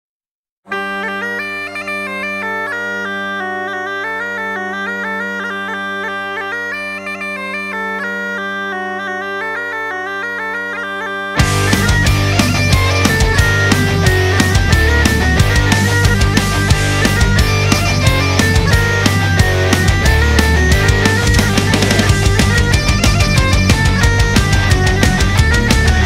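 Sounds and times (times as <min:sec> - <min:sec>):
bagpipe melody over drones: 0:00.7 - 0:26.0
heavy metal band: 0:11.4 - 0:26.0.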